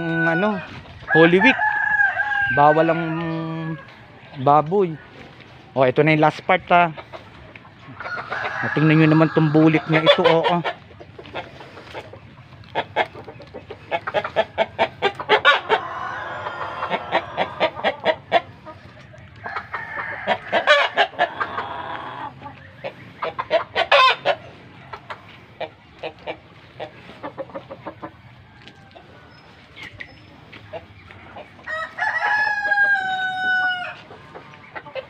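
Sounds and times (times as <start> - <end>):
roosters crowing: 0.0 - 5.3, 7.7 - 35.0
chickens clucking: 0.0 - 35.0.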